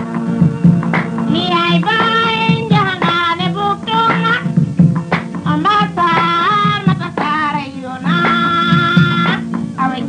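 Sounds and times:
rhythmic low accompaniment: 0.0 - 10.0
person singing: 5.4 - 10.0.

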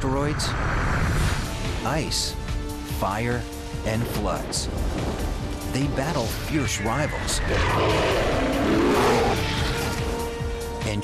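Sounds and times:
dramatic music: 1.0 - 11.0
animal roar: 7.5 - 10.0.

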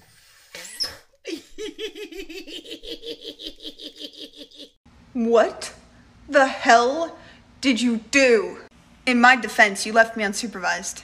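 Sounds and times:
woman laughing: 1.2 - 4.8.

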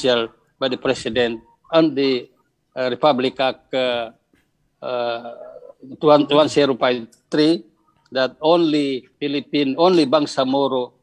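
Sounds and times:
man speaking over video call: 0.0 - 11.0.

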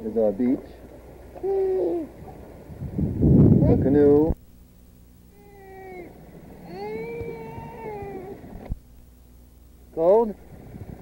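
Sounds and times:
child's high-pitched cries: 5.4 - 8.4.

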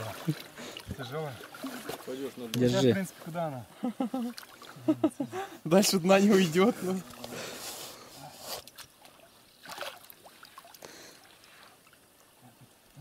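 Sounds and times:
water sloshing: 0.0 - 5.1, 8.6 - 12.1
water splashes: 0.0 - 5.1, 8.4 - 12.9.

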